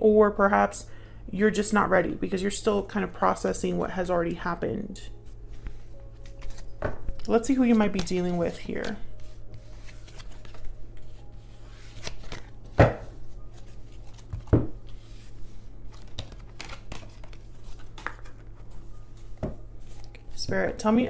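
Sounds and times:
cards shuffling and rustling: 5.5s - 20.4s.

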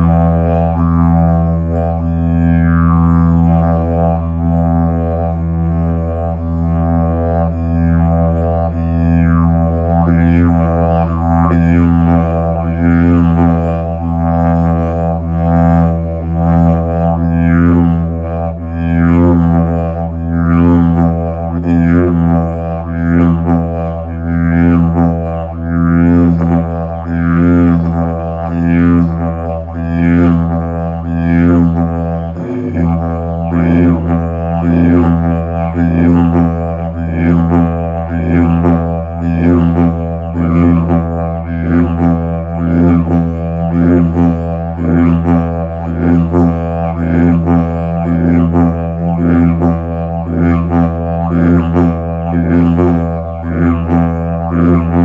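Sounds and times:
didgeridoo drone: 0.0s - 55.0s.

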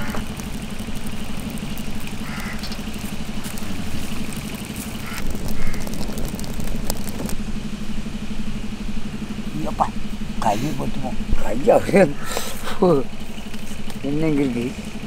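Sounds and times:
wood fire crackling: 0.0s - 7.5s
low mechanical hum: 0.0s - 15.0s.

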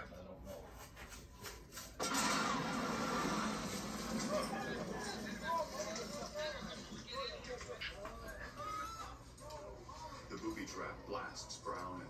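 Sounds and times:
documentary soundtrack from television: 0.0s - 12.0s.

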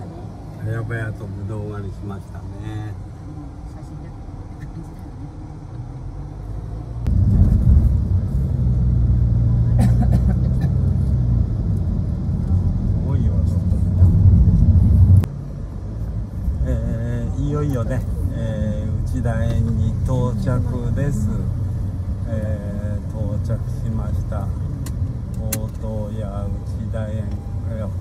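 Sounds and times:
car engine and road noise: 0.0s - 28.0s.

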